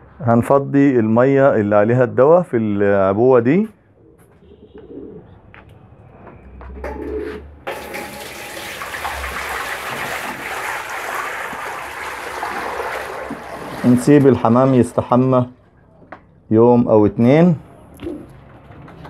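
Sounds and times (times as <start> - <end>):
pigeons cooing: 4.0 - 5.4, 6.9 - 7.4
water pouring into basin: 7.7 - 15.1.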